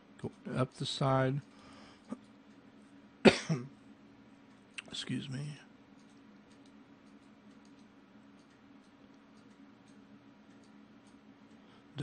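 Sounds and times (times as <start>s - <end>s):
man coughing: 3.2s - 3.8s.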